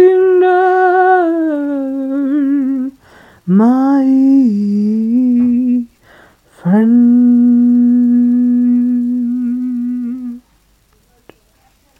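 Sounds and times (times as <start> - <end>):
person humming a long note: 0.0 - 5.9, 6.5 - 10.4.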